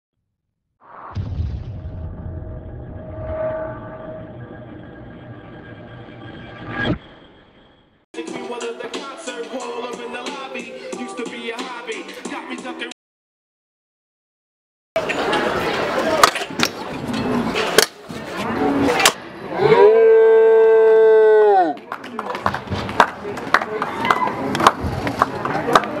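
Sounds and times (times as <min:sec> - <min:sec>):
impact: 0:00.9 - 0:07.2
deep rumble: 0:01.0 - 0:07.2.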